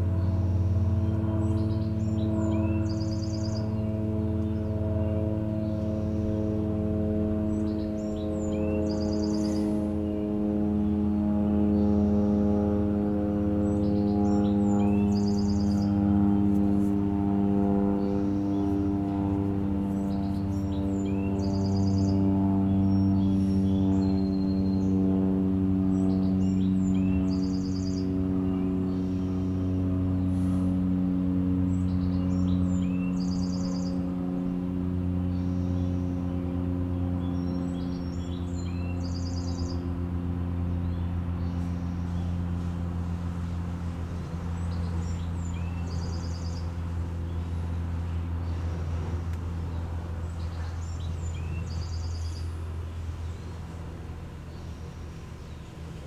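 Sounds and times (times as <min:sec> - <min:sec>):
songbird singing: 0:00.0 - 0:30.3, 0:31.4 - 0:56.0
drone of low tones: 0:00.0 - 0:56.0.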